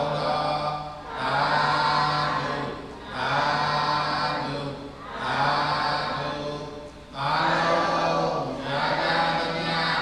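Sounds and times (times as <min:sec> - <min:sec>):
monks chanting in unison: 0:00.0 - 0:10.0.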